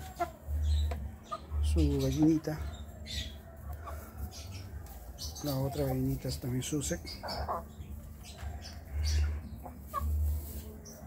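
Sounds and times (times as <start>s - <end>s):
hens clucking and chirping: 0.0s - 11.0s.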